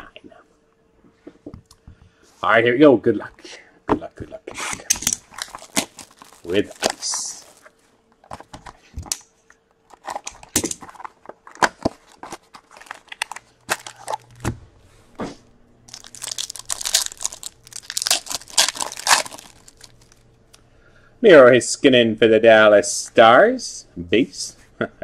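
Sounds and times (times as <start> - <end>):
foil pack tearing: 4.9 - 7.7, 11.6 - 14.4, 15.9 - 20.2
plastic packaging crinkling: 4.9 - 8.7, 9.9 - 14.5, 15.9 - 20.3.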